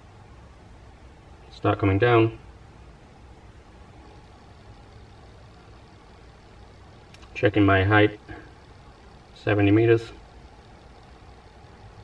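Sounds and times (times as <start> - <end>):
faint low engine-like rumble: 0.0 - 12.0.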